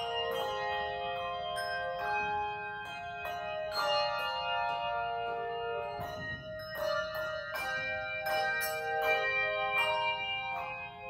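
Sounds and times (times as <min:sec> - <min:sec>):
handbell chords ringing: 0:00.0 - 0:11.0.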